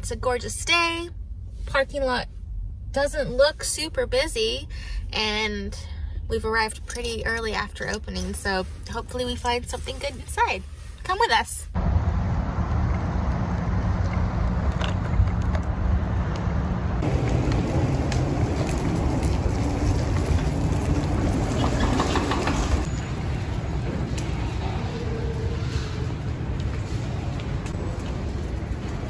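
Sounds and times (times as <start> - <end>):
road traffic rumble: 11.7 - 29.0
wind noise: 11.8 - 29.0.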